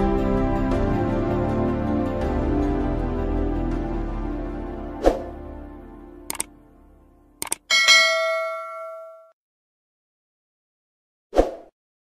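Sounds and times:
bell chime ding: 0:07.5 - 0:09.3.

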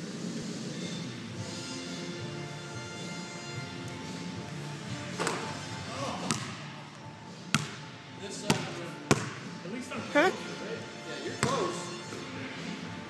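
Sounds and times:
basketball bouncing on wooden floor: 0:07.5 - 0:07.8, 0:08.5 - 0:09.4.

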